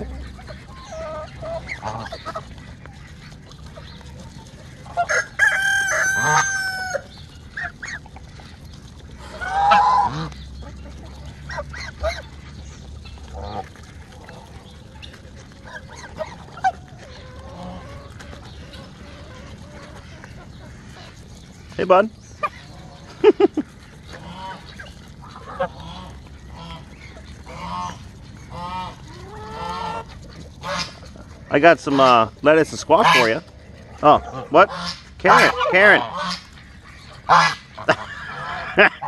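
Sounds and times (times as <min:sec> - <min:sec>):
geese honking: 0:00.0 - 0:08.6, 0:09.2 - 0:39.0
rooster crowing: 0:05.1 - 0:07.0.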